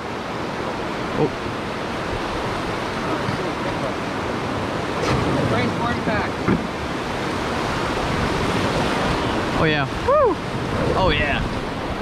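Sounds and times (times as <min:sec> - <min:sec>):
whitewater rapids rushing: 0:00.0 - 0:12.0.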